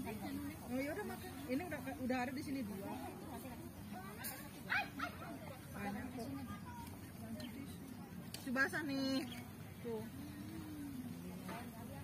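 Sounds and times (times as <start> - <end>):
low background voices: 0.0 - 12.0.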